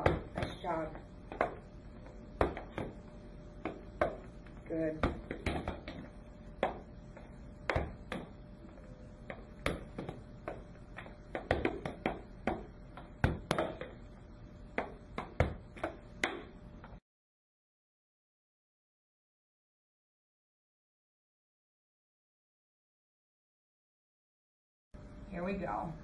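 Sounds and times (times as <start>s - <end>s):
ball being volleyed and caught: 0.0s - 1.6s, 2.4s - 3.0s, 3.6s - 7.0s, 7.6s - 8.4s, 9.2s - 14.0s, 14.7s - 16.6s.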